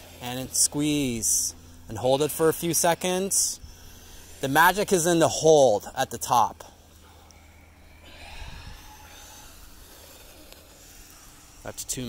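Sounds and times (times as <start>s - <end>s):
faint low rumble: 0.0s - 12.0s
person exhaling slowly: 6.9s - 11.7s.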